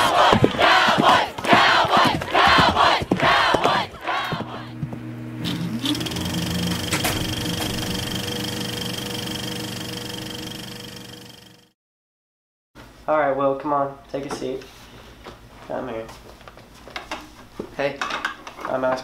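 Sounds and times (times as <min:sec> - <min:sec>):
crowd shouting a rhythmic chant: 0:00.0 - 0:04.7
low humming chord: 0:04.5 - 0:11.7
thin high steady tone: 0:06.0 - 0:11.6.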